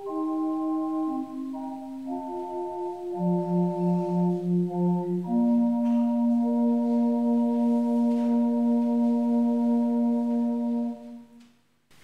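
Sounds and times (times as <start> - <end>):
electronic keyboard organ-like chord: 0.0 - 11.4.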